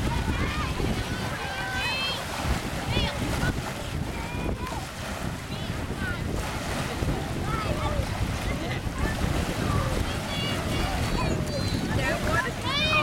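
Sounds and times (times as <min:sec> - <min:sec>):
small waves lapping on shore: 0:00.0 - 0:13.0
wind rumbling on microphone: 0:00.0 - 0:13.0.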